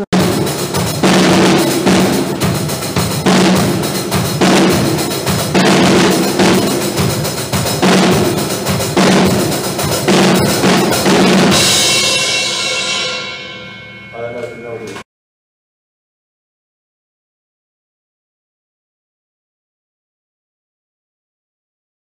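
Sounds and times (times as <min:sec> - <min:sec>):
cymbal crash ringing: 0:00.0 - 0:15.0
drum kit playing: 0:00.0 - 0:15.0.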